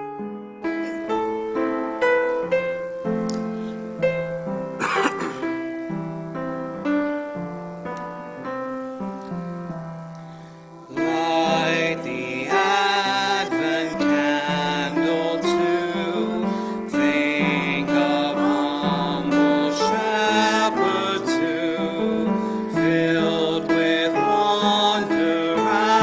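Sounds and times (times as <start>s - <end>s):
piano playing chords: 0.0s - 26.0s
person singing: 10.7s - 26.0s.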